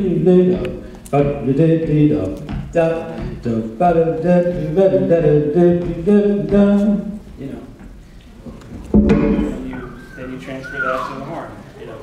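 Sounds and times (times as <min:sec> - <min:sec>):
man scat-singing: 0:00.0 - 0:07.2
sharp knock: 0:08.9 - 0:09.8.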